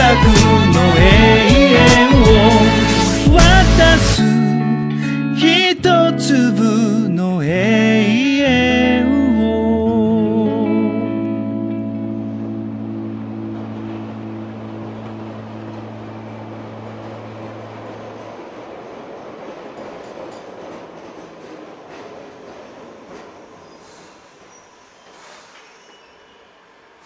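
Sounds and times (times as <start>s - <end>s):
held music chord: 0.0s - 18.4s
subway train running: 0.0s - 27.0s.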